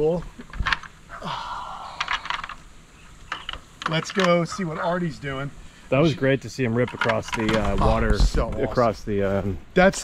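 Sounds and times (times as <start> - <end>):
metal latch clicks and rattles: 6.9 - 7.7.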